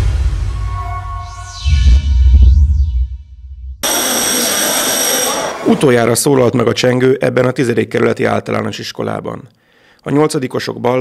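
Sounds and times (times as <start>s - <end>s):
low rumble: 0.0s - 3.9s.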